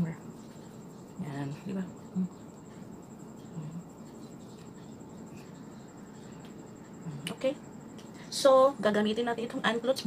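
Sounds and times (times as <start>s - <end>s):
makeup brush brushing skin: 0.0s - 6.4s.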